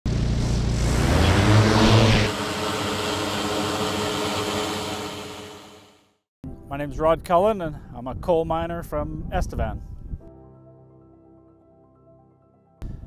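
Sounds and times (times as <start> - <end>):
drone rotors humming: 0.1 - 6.0.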